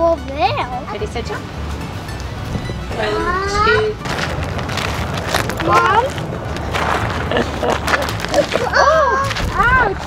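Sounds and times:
rough rustling: 3.9s - 10.0s.

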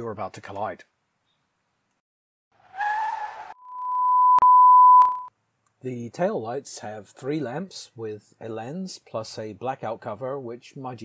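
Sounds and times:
high electronic beep: 3.6s - 5.3s.

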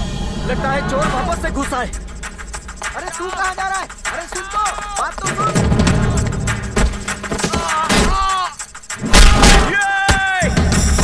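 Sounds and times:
person crying out: 7.5s - 8.6s
sharp punch impact: 9.0s - 9.8s.

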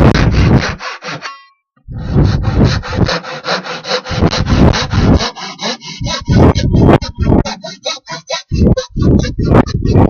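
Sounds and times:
hand saw cutting wood: 0.0s - 1.4s, 2.0s - 10.0s.

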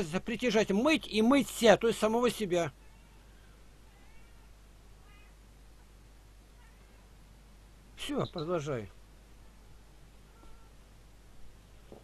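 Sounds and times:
low steady hum: 0.0s - 12.0s
cat meowing faintly: 2.8s - 5.4s, 6.5s - 7.1s, 10.2s - 10.8s.

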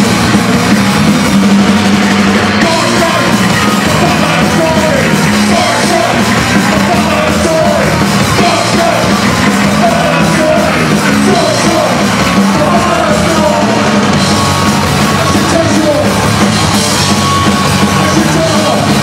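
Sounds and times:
punk band playing live: 0.0s - 19.0s
shouted vocals: 2.3s - 16.4s, 17.4s - 19.0s.

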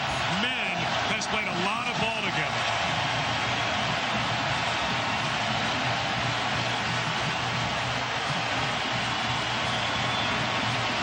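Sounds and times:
music playing: 0.0s - 11.0s
stadium crowd cheering: 0.0s - 11.0s.

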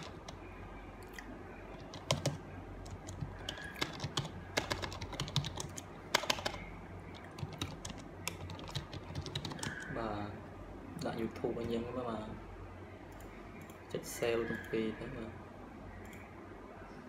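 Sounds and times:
keyboard typing clicks: 1.0s - 9.9s.

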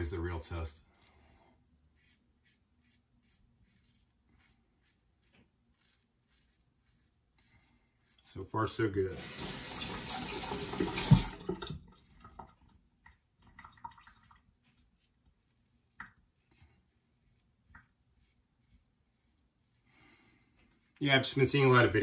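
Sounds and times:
tap running: 9.2s - 12.5s.

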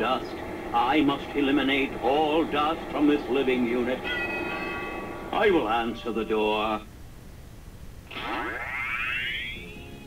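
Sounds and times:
synthesized rising whine: 8.1s - 10.0s.

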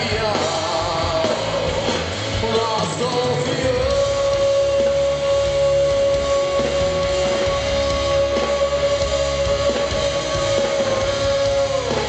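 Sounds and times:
drums: 0.0s - 12.0s
guitars: 0.0s - 12.0s.

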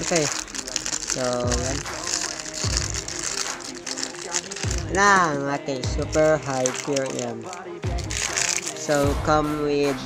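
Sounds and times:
plastic bag crinkling: 0.0s - 9.3s
background music with steady beat: 0.0s - 10.0s.

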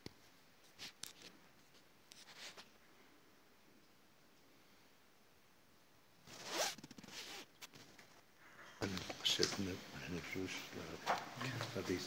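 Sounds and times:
zipper-like ripping rasps: 6.2s - 8.0s.

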